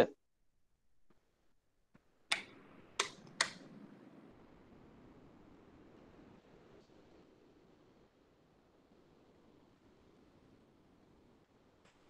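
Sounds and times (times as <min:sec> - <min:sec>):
sharp mouse clicks: 0:02.3 - 0:03.6.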